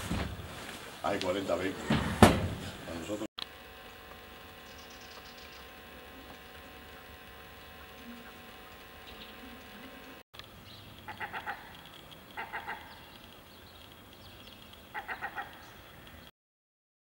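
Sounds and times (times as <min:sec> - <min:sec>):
steady outdoor hum: 0:00.0 - 0:16.3
bird call: 0:04.6 - 0:07.2, 0:14.5 - 0:16.0.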